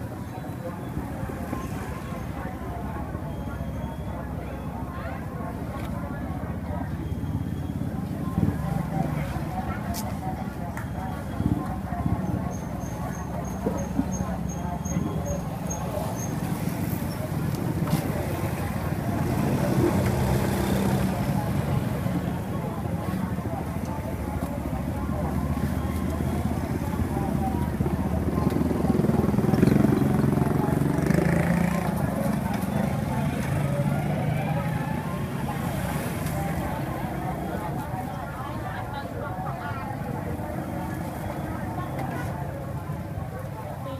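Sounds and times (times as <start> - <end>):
motor traffic: 0.0 - 43.9
people talking: 0.0 - 43.9.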